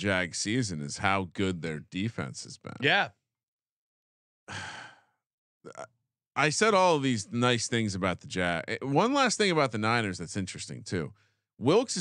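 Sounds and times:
man sighing: 4.5 - 5.1.

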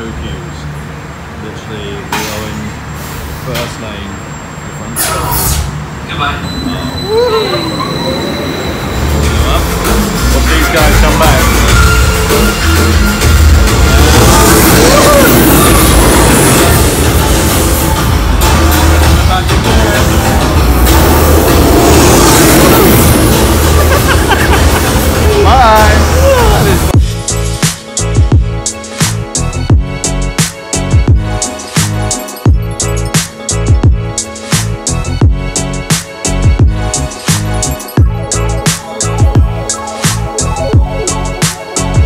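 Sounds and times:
low rumble of ride machinery: 0.0 - 27.2
roller coaster train rolling on track: 5.3 - 27.0.

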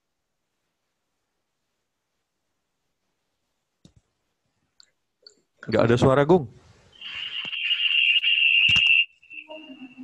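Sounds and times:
high-pitched whine: 6.9 - 10.0
clicks: 8.6 - 9.0.

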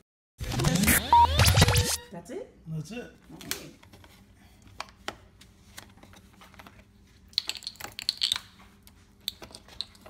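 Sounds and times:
small objects clicking on countertop: 7.3 - 8.6.

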